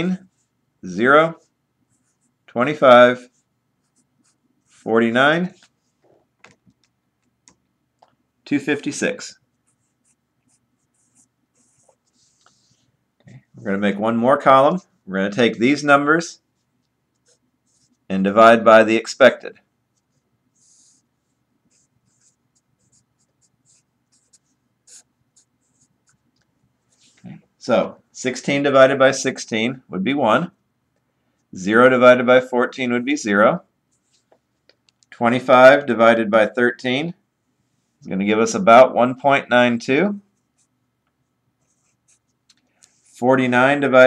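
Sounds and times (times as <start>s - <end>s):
person speaking: 0.0s - 6.8s, 8.4s - 19.7s, 41.6s - 44.0s
marker scratching on paper: 1.3s - 2.4s, 3.2s - 4.9s, 9.6s - 12.9s, 16.6s - 18.1s, 20.0s - 27.2s, 41.6s - 43.3s.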